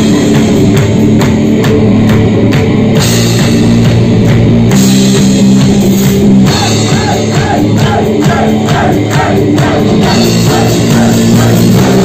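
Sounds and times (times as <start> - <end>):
drum kit beat: 0.0 - 12.0
electric guitars and bass: 0.0 - 12.0.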